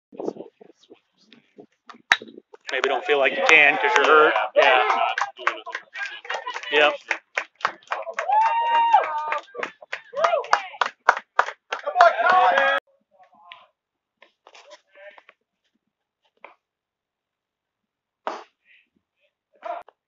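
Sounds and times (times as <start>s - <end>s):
crowd yelling and cheering: 2.7s - 10.8s, 11.7s - 12.8s
crowd clapping fast: 2.7s - 12.8s.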